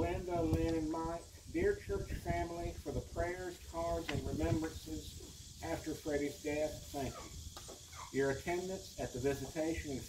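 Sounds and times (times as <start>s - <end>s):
man reading aloud: 0.0s - 7.2s, 8.1s - 10.0s.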